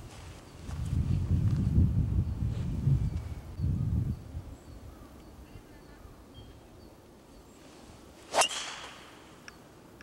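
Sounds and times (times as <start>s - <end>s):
golf club swish: 7.9s - 9.4s
clubhead striking ball: 8.3s - 9.3s.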